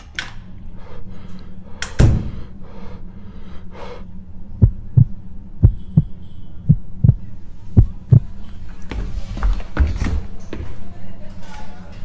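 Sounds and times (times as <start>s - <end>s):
steady low hum: 0.0s - 12.0s
heartbeat thumps: 4.5s - 8.4s.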